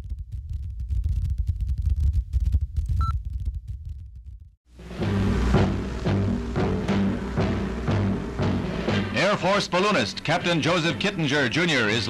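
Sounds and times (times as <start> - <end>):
film soundtrack rumble and crackle: 0.0 - 12.0.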